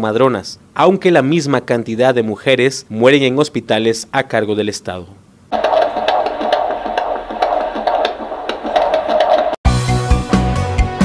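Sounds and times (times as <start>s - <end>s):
fetal doppler heartbeat pulsing: 5.5s - 9.6s.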